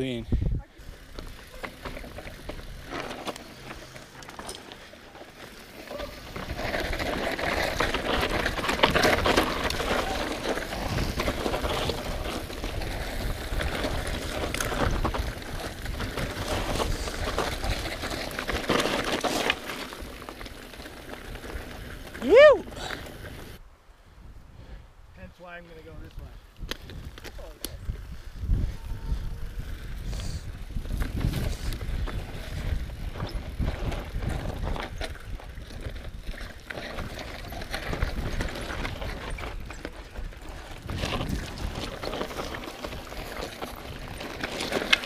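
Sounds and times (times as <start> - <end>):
bike tyres on dirt trail: 0.0 - 45.0
person shouting: 22.2 - 22.7.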